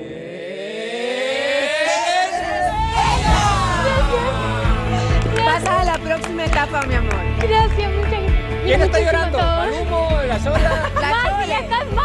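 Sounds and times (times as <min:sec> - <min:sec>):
synthesized suspense riser: 0:00.0 - 0:05.4.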